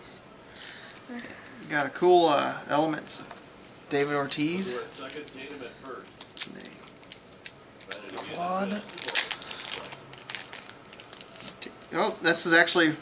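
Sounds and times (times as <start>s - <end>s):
cards clicking and rustling: 4.9s - 5.4s, 6.2s - 11.6s.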